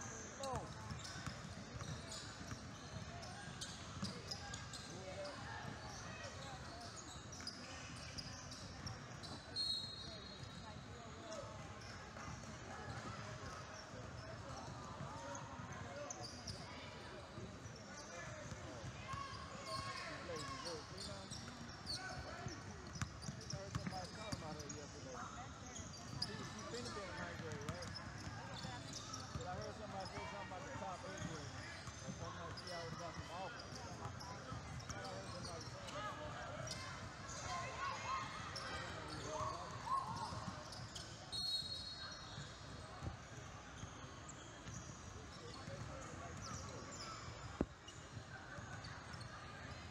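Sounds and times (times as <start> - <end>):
murmur of voices: 0.0 - 49.9.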